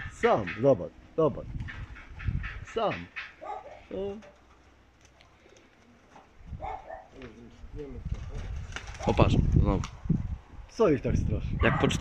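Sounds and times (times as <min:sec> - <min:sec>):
pigeons cooing: 0:01.5 - 0:09.2.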